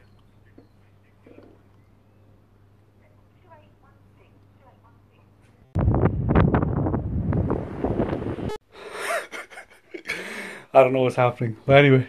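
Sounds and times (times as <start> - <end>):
wind buffeting microphone: 5.8 - 8.6
man laughing softly: 8.8 - 10.3.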